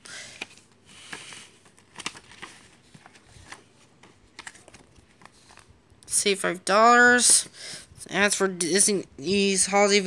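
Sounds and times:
paper rustling: 0:00.2 - 0:05.8.

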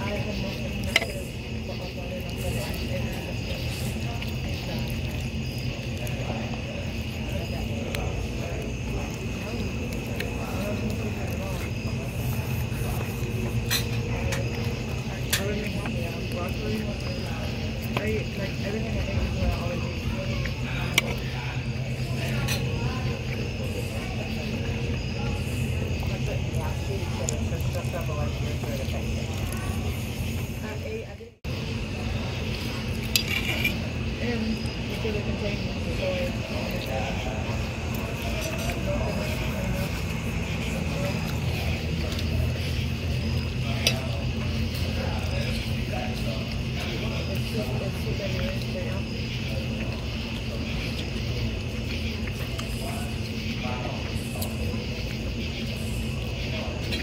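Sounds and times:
diners chattering: 0:00.0 - 0:57.0
cutlery clinking on metal platter: 0:33.1 - 0:33.8.

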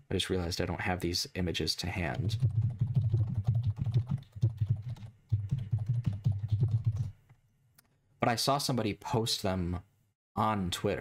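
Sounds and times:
fast typing on keyboard: 0:02.2 - 0:07.2.

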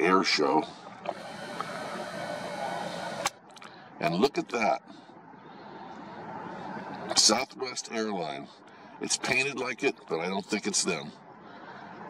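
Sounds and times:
camera zoom motor whirring: 0:01.0 - 0:03.4.

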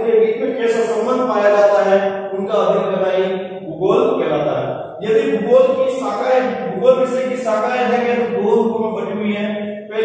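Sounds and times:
man's sing-song speech: 0:00.0 - 0:10.0.

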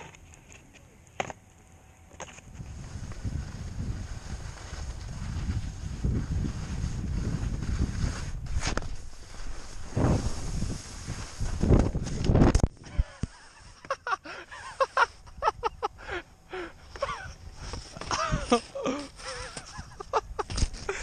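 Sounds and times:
wind on microphone: 0:02.4 - 0:13.0
snow scraping under sled: 0:02.5 - 0:12.5
breathy voice sounds: 0:16.0 - 0:19.6.

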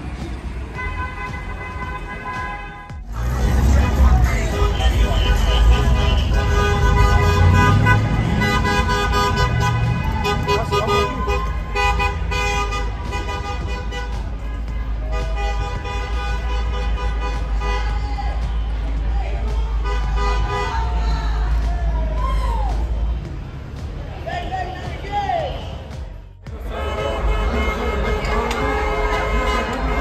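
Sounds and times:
car horns honking: 0:00.0 - 0:21.0, 0:24.4 - 0:30.0
street traffic rumble: 0:00.0 - 0:30.0.

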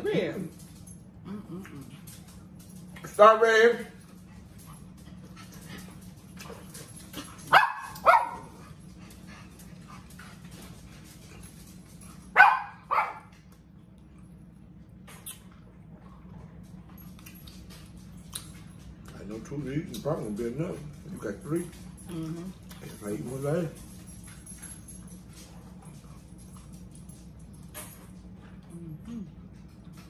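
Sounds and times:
steady low hum: 0:00.0 - 0:30.0
dog barking: 0:07.5 - 0:08.6, 0:12.4 - 0:13.3.

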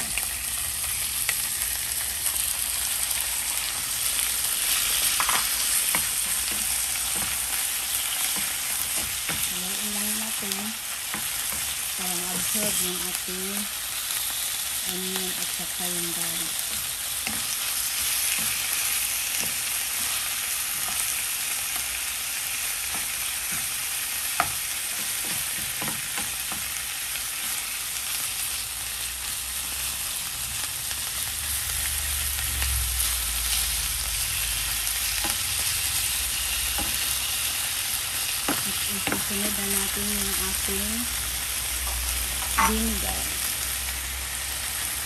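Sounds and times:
chicken sizzling in hot oil: 0:00.0 - 0:45.0.

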